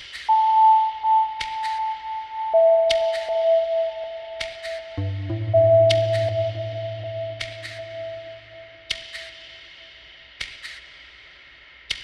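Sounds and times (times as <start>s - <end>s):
sustained synthesizer tone: 2.4s - 8.9s.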